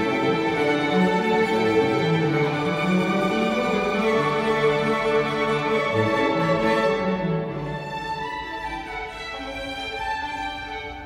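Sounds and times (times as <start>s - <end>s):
string orchestra playing chords: 0.0s - 11.0s.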